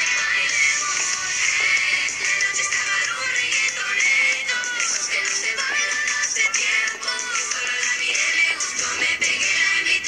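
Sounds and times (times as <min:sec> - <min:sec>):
reggaeton song with vocals: 0:00.0 - 0:10.0.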